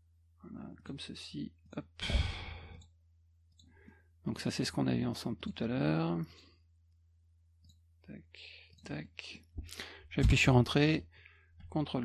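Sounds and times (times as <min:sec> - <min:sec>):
person sighing: 0:02.0 - 0:02.8.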